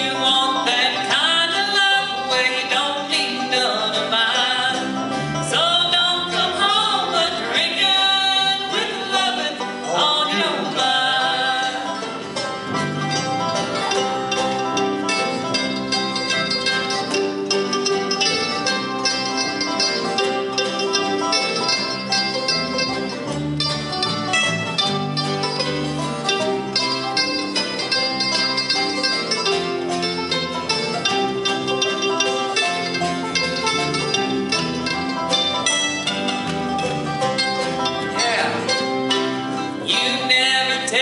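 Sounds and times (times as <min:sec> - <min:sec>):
acoustic guitar: 0:00.0 - 0:41.0
banjo picking: 0:00.0 - 0:41.0
bluegrass band playing: 0:00.0 - 0:41.0.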